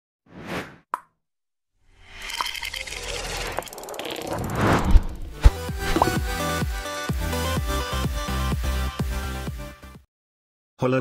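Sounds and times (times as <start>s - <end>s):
short whoosh: 4.4s - 6.1s.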